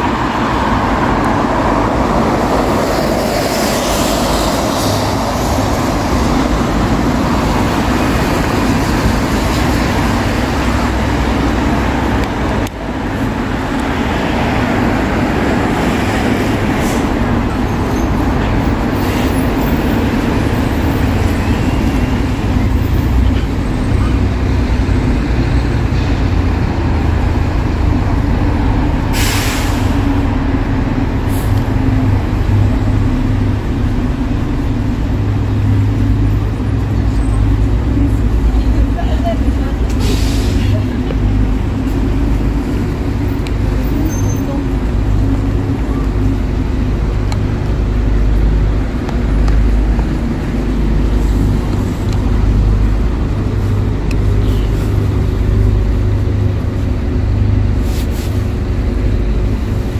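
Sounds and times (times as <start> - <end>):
traffic engine rumble: 0.0 - 59.9
air-brake hisses: 29.1 - 30.0.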